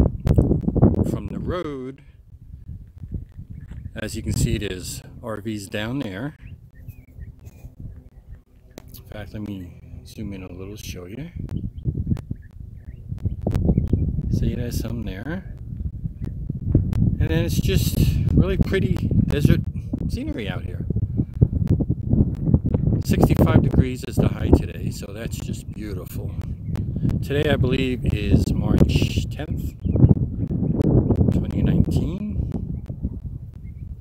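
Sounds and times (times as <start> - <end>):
wind rumble on microphone: 0.0 - 34.0
faint clicks: 0.2 - 0.7, 6.9 - 10.2
bird chirps: 6.3 - 9.0, 11.4 - 14.1, 33.6 - 34.0.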